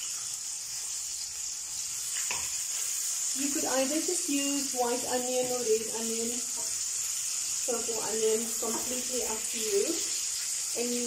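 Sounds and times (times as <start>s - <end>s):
onions sizzling in a frying pan: 0.0s - 11.0s.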